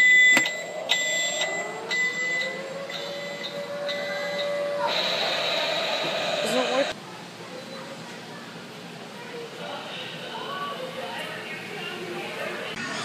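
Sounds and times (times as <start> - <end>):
pulsing alarm-like buzzing tone: 0.0 - 7.0.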